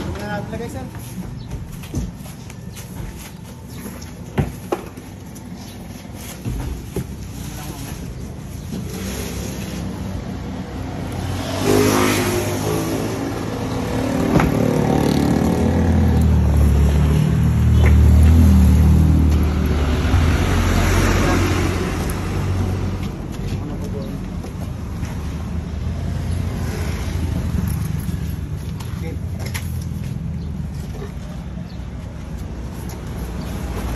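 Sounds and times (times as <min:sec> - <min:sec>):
vehicle engine passing: 0:08.9 - 0:23.3.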